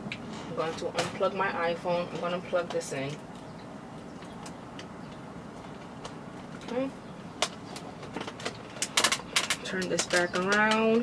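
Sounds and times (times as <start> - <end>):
charging cable clicks: 7.4 - 11.0.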